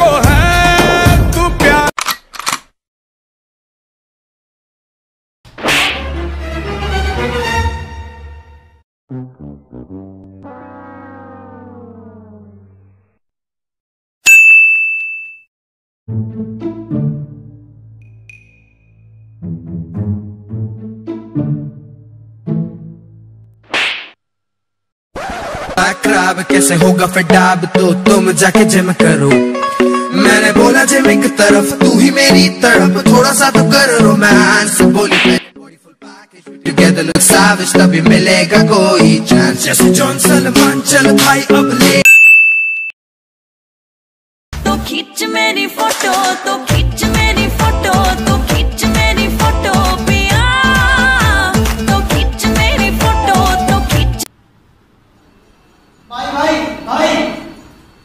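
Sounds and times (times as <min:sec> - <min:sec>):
bright bell-like ding: 0:14.3 - 0:15.5, 0:18.0 - 0:19.1, 0:42.1 - 0:43.0.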